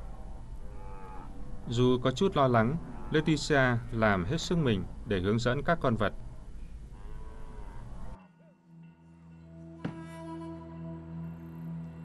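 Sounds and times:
cattle mooing: 0:00.0 - 0:01.7, 0:02.5 - 0:03.8, 0:06.9 - 0:08.2
low rumble of herd: 0:00.0 - 0:08.2.

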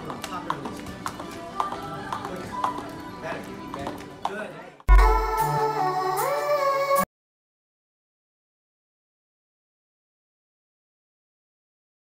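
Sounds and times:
background music: 0:00.0 - 0:07.1.

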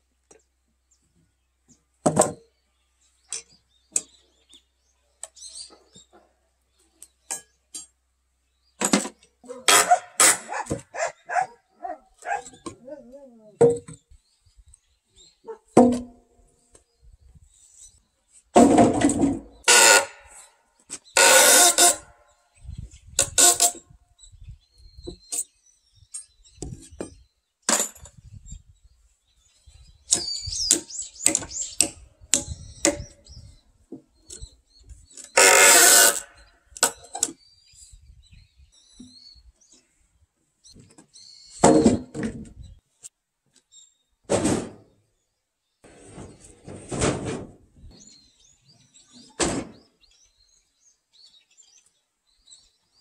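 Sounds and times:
timbers thudding onto concrete: 0:15.8 - 0:16.2, 0:18.5 - 0:20.1, 0:41.6 - 0:42.4.

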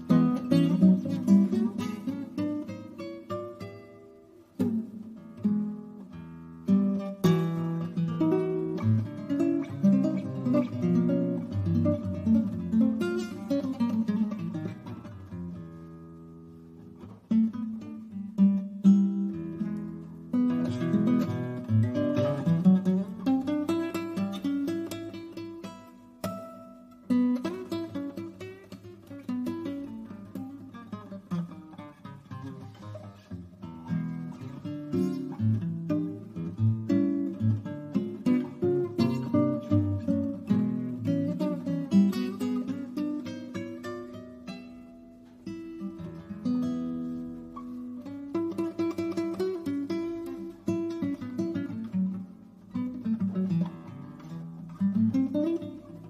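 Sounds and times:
plucked acoustic guitar: 0:00.0 - 0:56.0.

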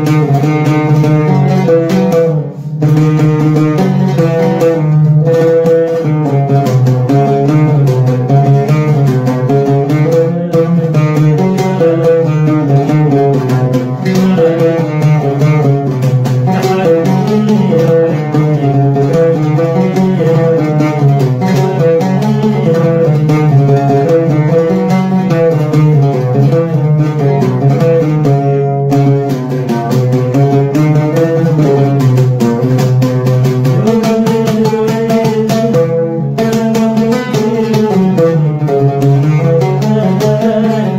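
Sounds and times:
oud plucked: 0:00.0 - 0:40.9
man singing: 0:09.9 - 0:11.4, 0:14.0 - 0:15.6, 0:16.5 - 0:21.0, 0:39.5 - 0:40.9.

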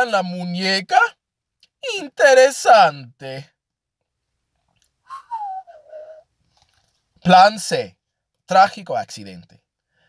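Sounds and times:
person whistling a falling note: 0:05.1 - 0:06.2.

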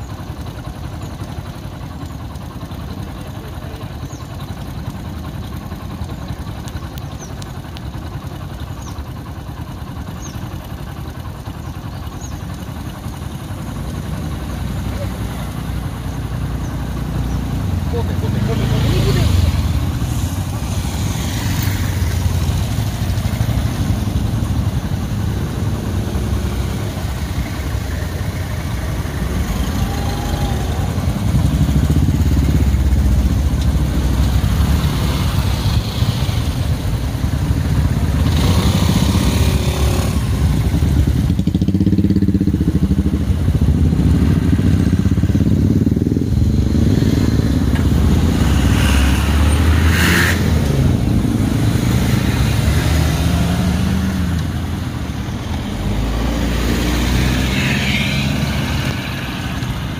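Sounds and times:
motorcycle and car engines idling: 0:00.0 - 0:59.9.

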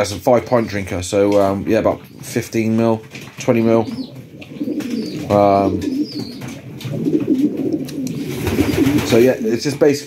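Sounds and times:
pigeons cooing: 0:00.0 - 0:10.0.

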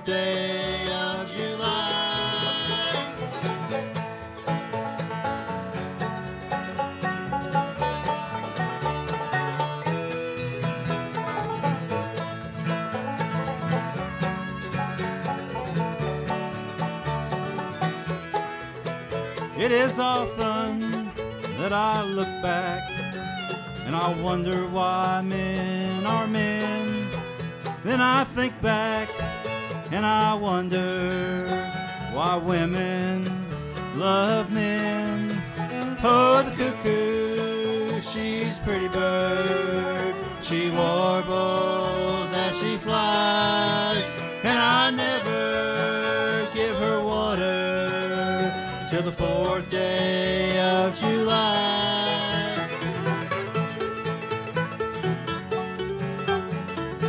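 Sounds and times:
men singing: 0:00.0 - 0:03.3, 0:19.6 - 0:22.9, 0:23.8 - 0:27.0, 0:27.8 - 0:29.2, 0:29.9 - 0:52.8
acoustic guitar: 0:00.0 - 0:57.0
banjo: 0:00.0 - 0:57.0
upright bass: 0:00.0 - 0:57.0.

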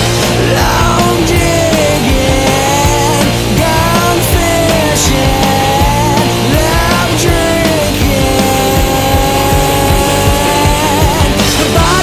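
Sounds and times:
steady drum beat: 0:00.0 - 0:12.0.

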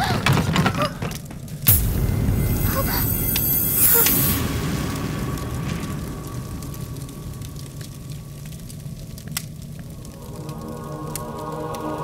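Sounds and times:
dark film score: 0:00.0 - 0:12.0
fire crackles: 0:00.3 - 0:12.0
low rumble: 0:01.7 - 0:12.0.

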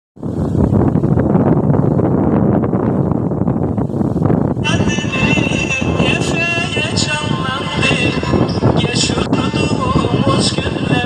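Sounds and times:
wind buffeting microphone: 0:00.2 - 0:11.0
voice with wavering pitches: 0:04.6 - 0:11.0.

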